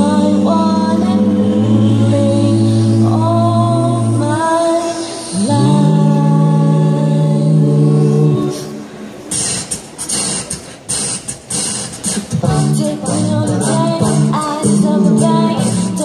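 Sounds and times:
a cappella group singing harmony: 0.0s - 9.0s, 12.4s - 16.0s
vocal percussive hits: 0.0s - 16.0s.

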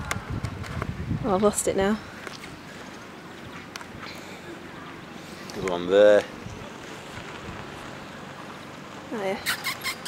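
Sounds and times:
wind rushing over microphone: 0.0s - 2.7s, 6.3s - 8.3s.

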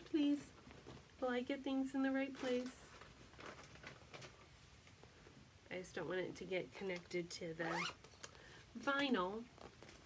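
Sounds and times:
faint rustling: 0.1s - 5.5s.

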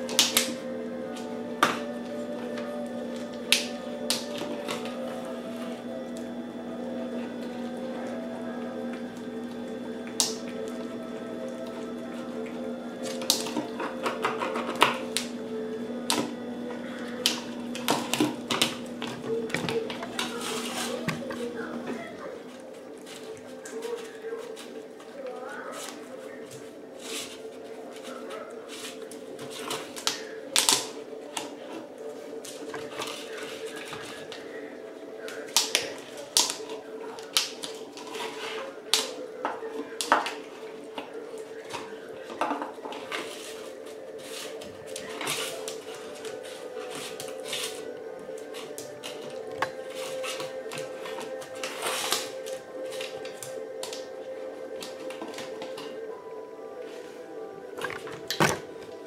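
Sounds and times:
dish clicking on tile floor: 8.9s - 15.4s.

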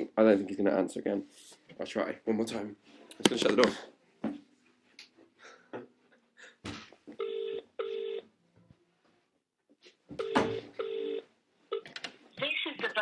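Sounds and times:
phone ringback tone: 7.2s - 8.2s, 10.2s - 11.9s.

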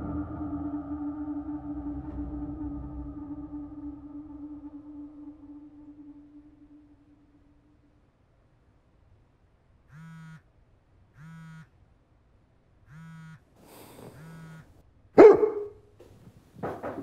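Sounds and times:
short buzzing tones: 9.9s - 11.8s, 12.8s - 14.8s.

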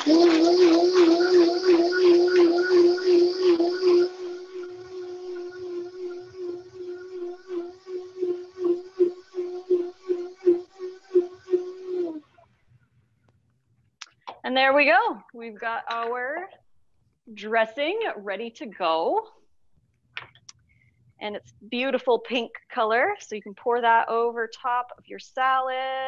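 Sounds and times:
blender motor running: 0.0s - 12.2s
high rushing noise: 0.0s - 12.2s.

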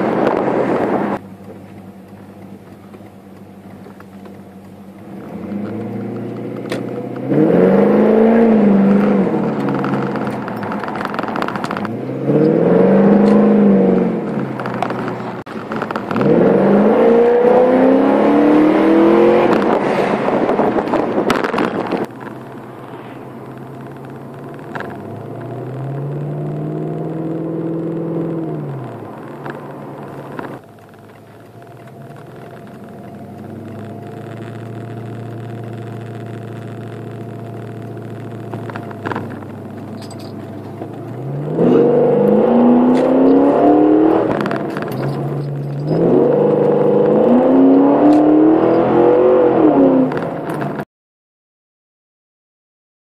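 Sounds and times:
car engine droning inside cabin: 0.0s - 50.8s.

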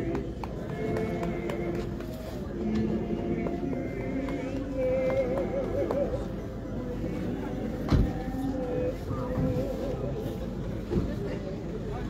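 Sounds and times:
wavering sung vocal line: 0.0s - 10.7s
voices of people gathered: 0.0s - 12.0s.

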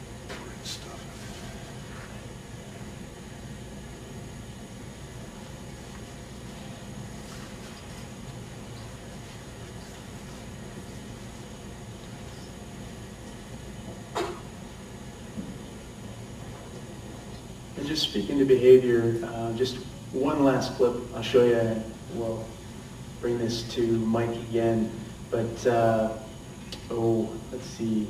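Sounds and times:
low room hum: 0.0s - 28.0s.

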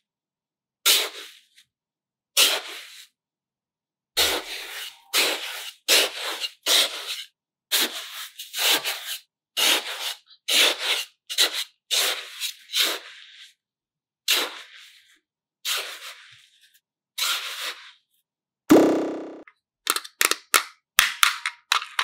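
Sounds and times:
toy shovel scraping damp sand: 0.9s - 1.6s, 2.4s - 3.2s, 4.2s - 13.6s, 14.3s - 18.1s.

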